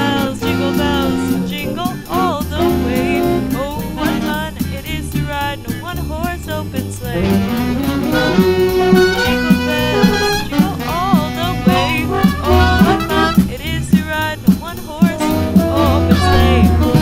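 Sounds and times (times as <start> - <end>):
small jazz band playing: 0.0 - 17.0.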